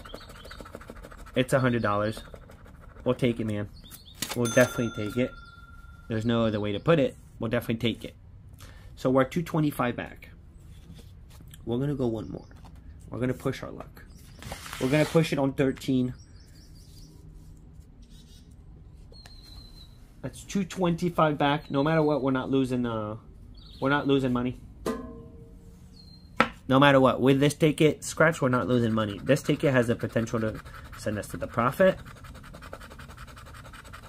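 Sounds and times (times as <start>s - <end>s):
bird chirps: 0.0s - 0.8s, 3.7s - 6.9s, 16.0s - 17.3s, 19.1s - 20.1s, 25.7s - 26.4s
coin scratching lottery ticket: 0.0s - 3.5s, 28.6s - 34.0s
outdoor ambience: 0.0s - 34.0s.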